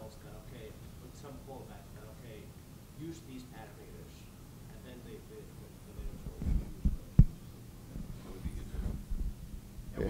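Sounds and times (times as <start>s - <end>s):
microphone handling thumps: 6.0s - 10.0s.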